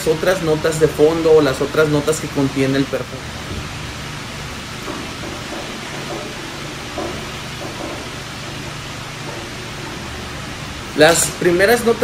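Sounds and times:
air conditioning hiss: 0.0s - 12.0s.

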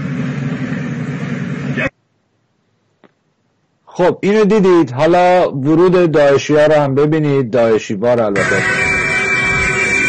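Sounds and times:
steady rushing noise: 8.4s - 10.0s.

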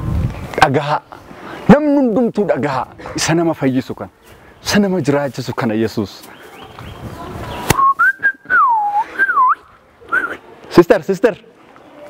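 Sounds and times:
person whistling: 7.8s - 10.4s.

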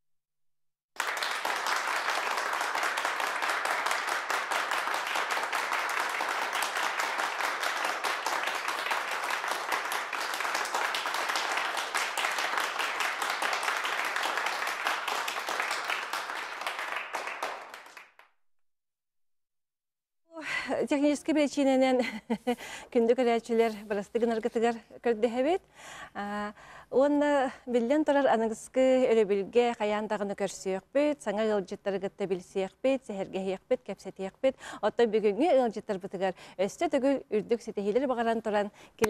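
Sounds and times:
group applauding: 1.0s - 18.4s.

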